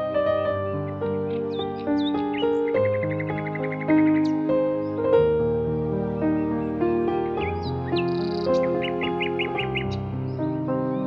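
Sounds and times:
gentle piano music: 0.0s - 11.0s
songbird chirping: 0.0s - 11.0s.

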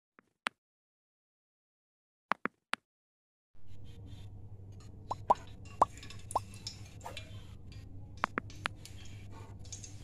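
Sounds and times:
steady low hum: 3.6s - 10.0s.

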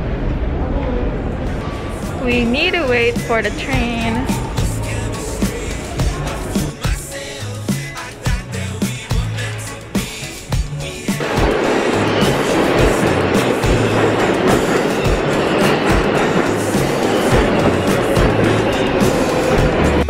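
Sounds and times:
subway train rushing rumble: 0.0s - 20.0s
background music with steady beat: 1.6s - 20.0s.

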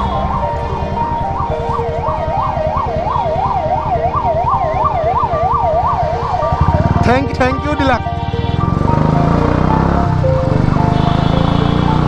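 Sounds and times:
ambulance siren yelping: 0.0s - 12.0s
vehicle engines and road noise: 0.0s - 12.0s.

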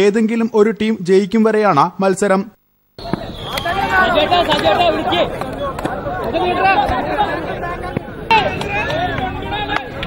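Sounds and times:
man narrating: 0.0s - 2.6s
crowd chatter and shouting: 3.0s - 10.0s.

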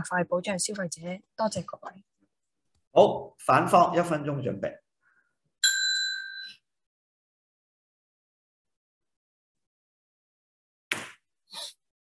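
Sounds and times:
bell ding: 5.6s - 6.6s.

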